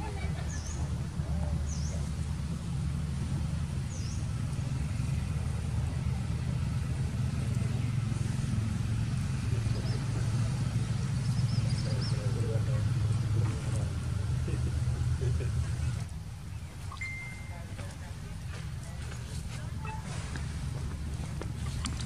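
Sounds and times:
vehicle engine rumbling: 0.0s - 22.0s
faint high chirps: 16.8s - 17.8s.

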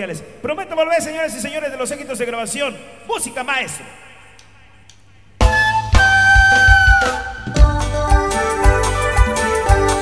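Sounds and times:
live band music: 5.3s - 10.0s
bass: 5.4s - 10.0s.

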